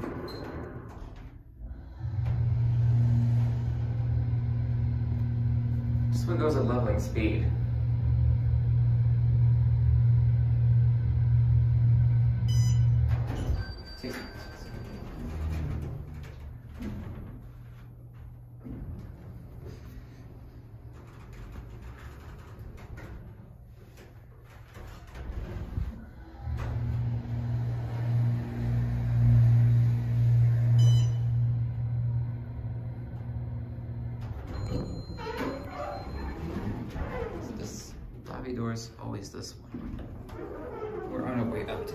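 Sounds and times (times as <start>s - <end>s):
elevator low hum: 0.0s - 41.9s.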